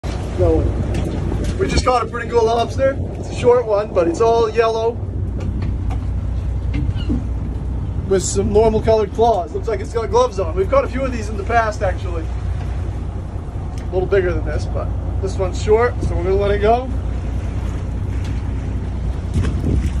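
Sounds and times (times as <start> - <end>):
boat engine humming: 0.0 - 20.0
wind buffeting microphone: 0.0 - 20.0
splash: 16.7 - 20.0.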